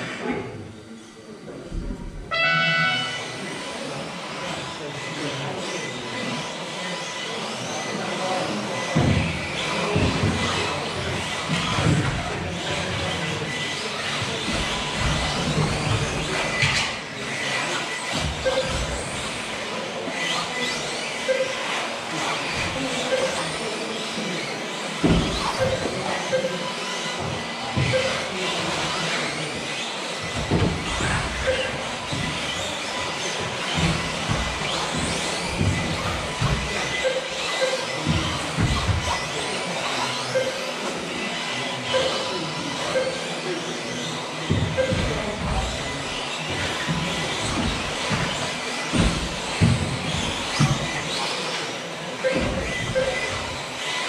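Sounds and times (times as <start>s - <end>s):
electric toy car motors whining: 0.0s - 2.2s, 3.0s - 54.0s.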